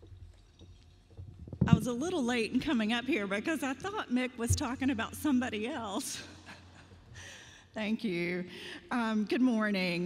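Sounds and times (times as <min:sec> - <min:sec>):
woman speaking: 0:01.7 - 0:06.4, 0:07.8 - 0:10.0.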